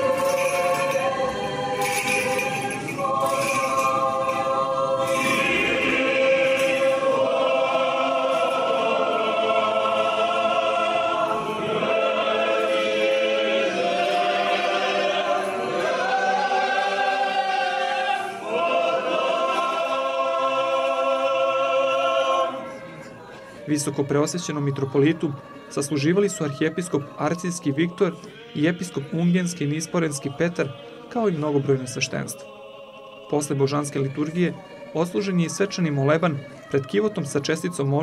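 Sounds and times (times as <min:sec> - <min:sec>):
church choir chanting: 0:00.0 - 0:38.0.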